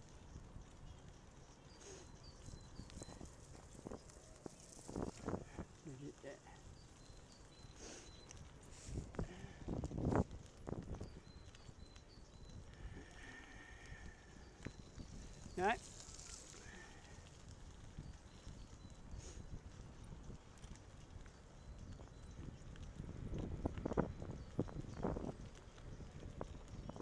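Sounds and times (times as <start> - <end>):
bicycle tyres on gravel: 0.0 - 27.0.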